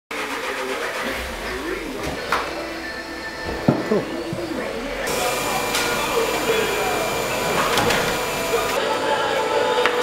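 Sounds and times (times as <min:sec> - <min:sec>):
mechanical hum: 0:00.8 - 0:09.8.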